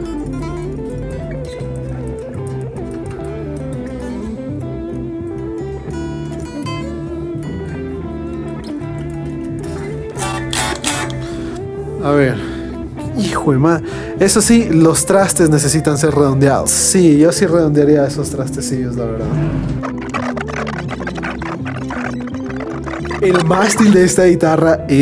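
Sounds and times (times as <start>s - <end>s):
electric guitar playing: 0.0s - 11.9s, 19.8s - 24.4s.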